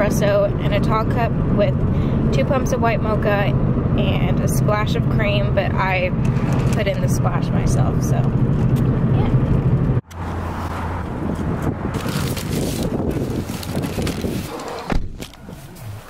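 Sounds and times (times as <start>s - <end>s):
car engine and road hum: 0.0s - 16.0s
plastic package rustling: 12.0s - 15.4s.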